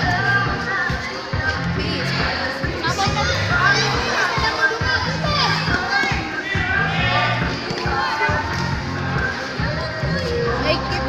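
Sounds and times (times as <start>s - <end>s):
music with repeating bass line: 0.0s - 11.0s
girls shouting: 2.8s - 8.8s.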